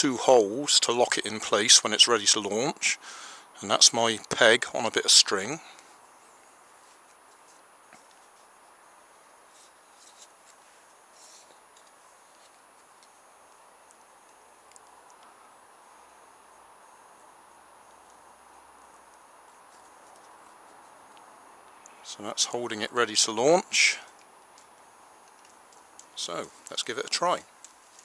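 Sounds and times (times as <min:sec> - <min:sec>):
quiet steady background hiss: 0:00.0 - 0:28.0.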